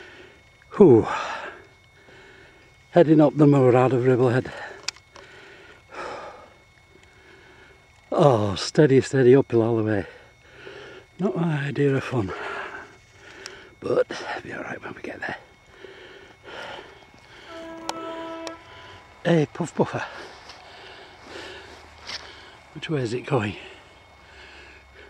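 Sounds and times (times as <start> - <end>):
train horn: 17.4 - 19.1.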